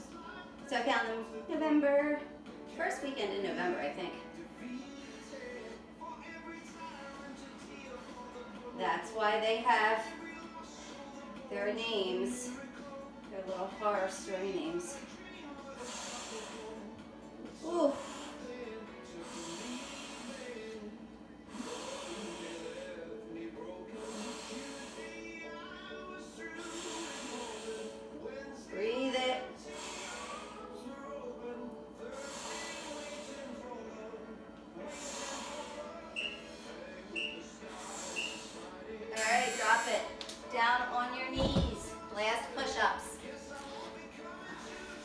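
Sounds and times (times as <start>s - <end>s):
music with singing over speaker: 0.0s - 45.0s
woman breathing hard: 17.7s - 18.5s, 19.2s - 20.6s, 21.5s - 22.8s, 26.6s - 28.1s, 29.7s - 30.7s, 32.2s - 33.5s.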